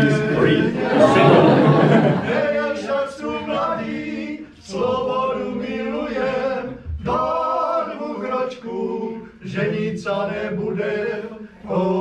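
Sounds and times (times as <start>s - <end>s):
men singing in harmony: 0.0s - 12.0s.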